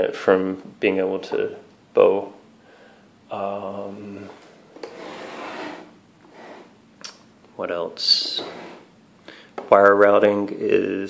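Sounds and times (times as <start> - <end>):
plastic case scraping on tabletop: 4.2 - 6.8, 8.2 - 8.9.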